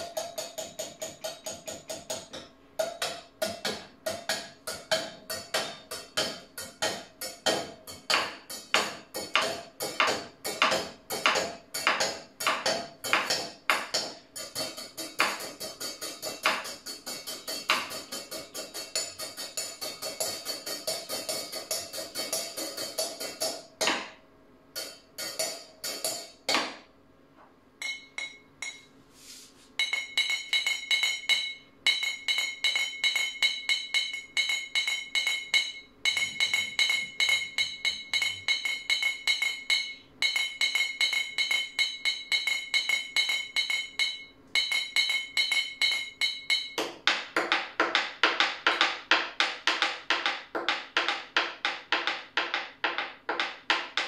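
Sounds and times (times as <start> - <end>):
stick clacking inside a ceramic mug: 0.0 - 24.2, 27.8 - 28.9, 29.8 - 54.0.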